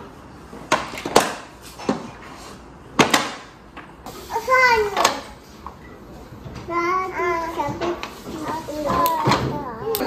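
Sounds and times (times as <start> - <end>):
toddler sing-song voice: 6.6 - 10.0.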